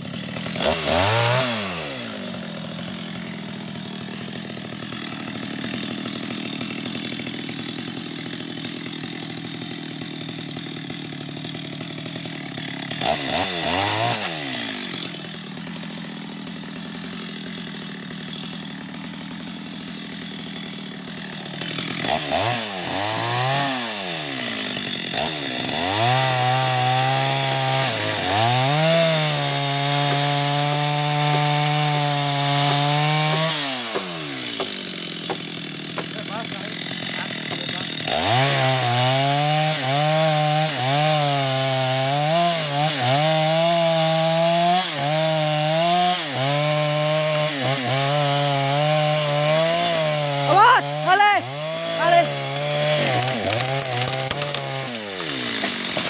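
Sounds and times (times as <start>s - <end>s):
chainsaw idling and cutting: 0.0s - 56.0s.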